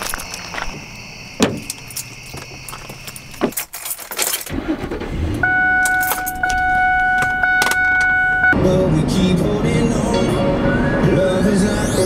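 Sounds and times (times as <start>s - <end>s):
car engine rumble: 0.0s - 12.0s
keys jangling: 1.6s - 4.5s, 5.8s - 6.6s
electronic warning tone: 5.4s - 8.6s
music: 8.6s - 12.0s.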